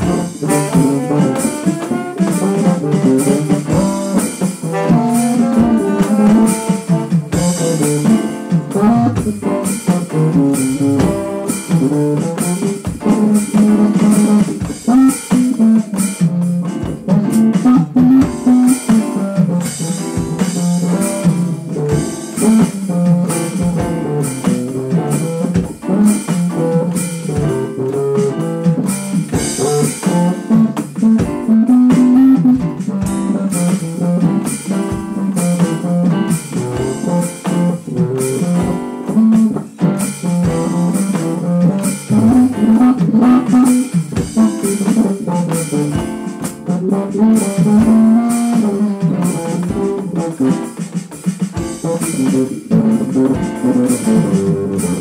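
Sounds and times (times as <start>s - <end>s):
plucked bass line: 0.0s - 50.5s, 51.8s - 55.0s
electronic drums: 0.0s - 55.0s
jazz combo playing: 0.0s - 55.0s.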